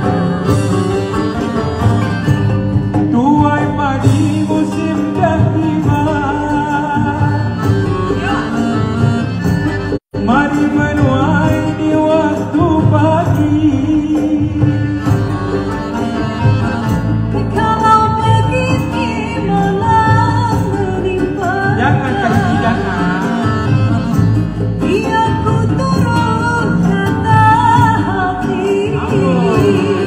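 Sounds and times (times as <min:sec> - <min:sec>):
accordion: 0:00.0 - 0:30.0
plucked lute: 0:00.0 - 0:30.0
person singing: 0:20.6 - 0:24.1, 0:24.8 - 0:30.0.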